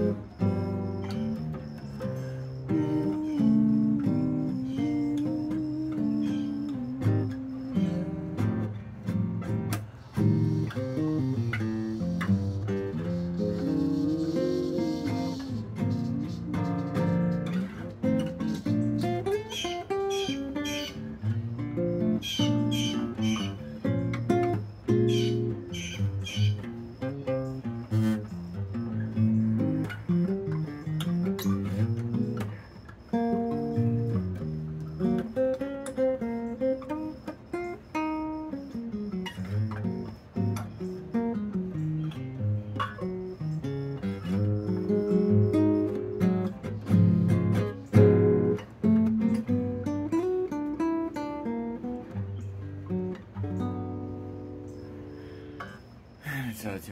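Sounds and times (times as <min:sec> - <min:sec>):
fingerpicked classical guitar: 0:00.0 - 0:56.9.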